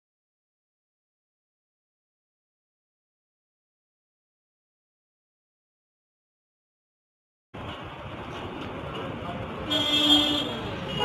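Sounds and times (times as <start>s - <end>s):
street traffic noise: 7.6s - 11.0s
vehicle horn: 9.7s - 11.0s.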